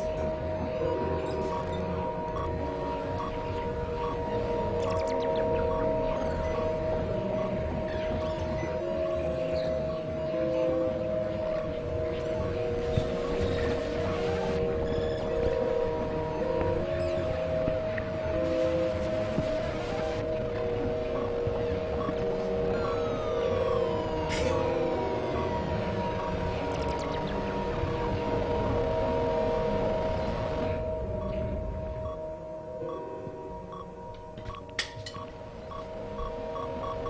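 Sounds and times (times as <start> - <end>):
ambient music of held tones: 0.0 - 37.0.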